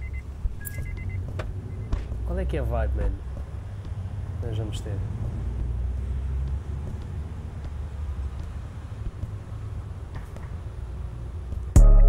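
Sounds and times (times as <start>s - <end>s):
faint street ambience: 0.0s - 11.8s.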